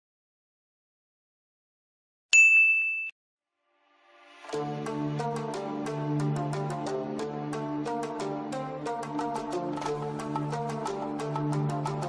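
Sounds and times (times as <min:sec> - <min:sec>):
bell-like ding: 0:02.4 - 0:03.2.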